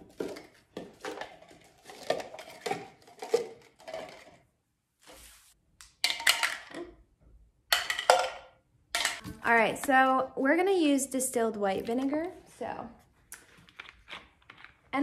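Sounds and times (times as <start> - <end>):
plastic cups clacking on stone: 0.0 - 4.4, 5.8 - 7.0, 7.7 - 9.2.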